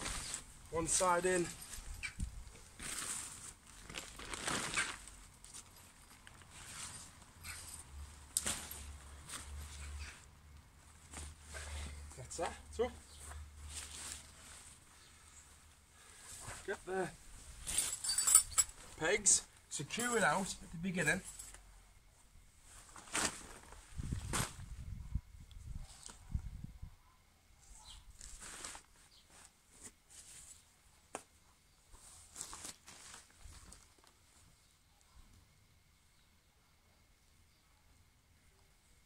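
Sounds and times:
tent fabric rustling: 0.0 - 19.0, 22.6 - 24.8, 27.9 - 30.7, 31.9 - 34.4.

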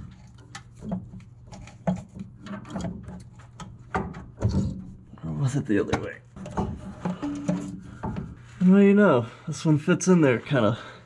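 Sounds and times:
light knocks and scrapes: 0.0 - 5.0, 5.9 - 8.8.

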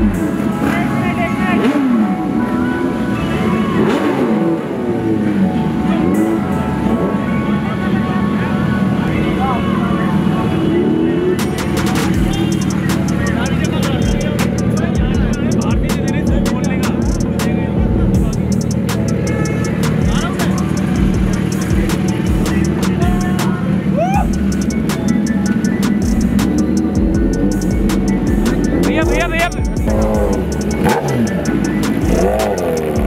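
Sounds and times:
crowd voices: 0.0 - 33.0
motorcycle engines running: 0.0 - 33.0
music with a regular beat: 11.4 - 33.0.

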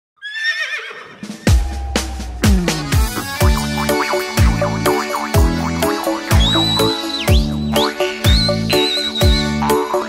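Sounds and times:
bass drum and bass hit: 1.4 - 7.6.

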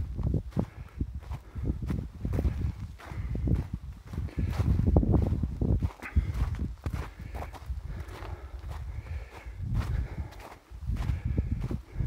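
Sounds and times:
footsteps crunching on snow: 0.1 - 12.0.

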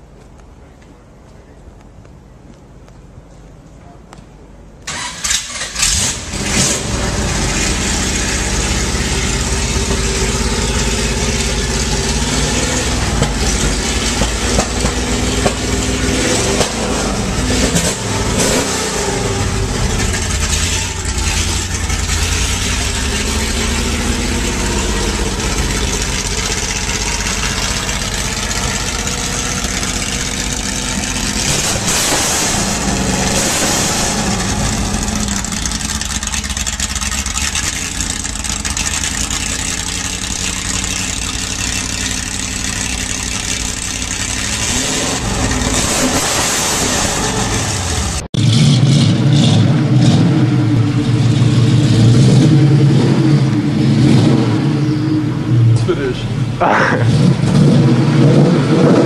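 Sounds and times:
racing engine starting and idling: 4.8 - 59.0.

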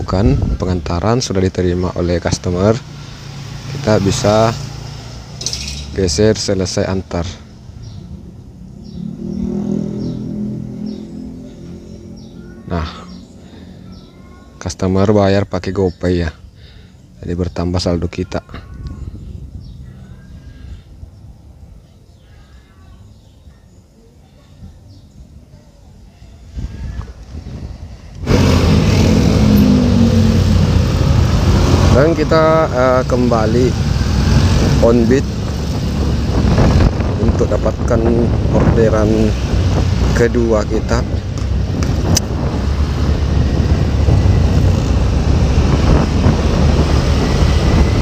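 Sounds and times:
vehicle engine running: 28.1 - 48.0.

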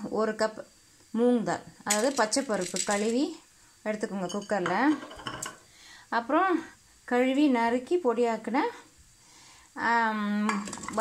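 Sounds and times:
squash cubes clinking against metal: 1.9 - 3.2.

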